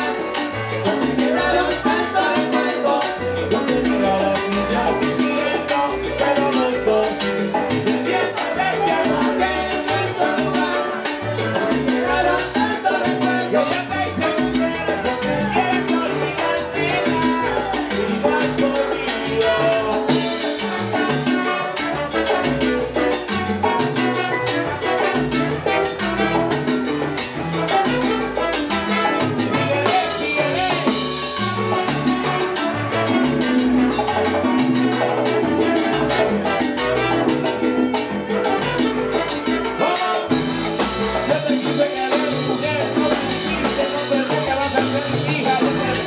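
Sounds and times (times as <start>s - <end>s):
man singing into microphone: 0.0s - 11.0s, 11.6s - 20.4s, 29.5s - 31.1s, 39.8s - 46.0s
busy percussion: 0.0s - 46.0s
salsa band playing: 0.0s - 46.0s.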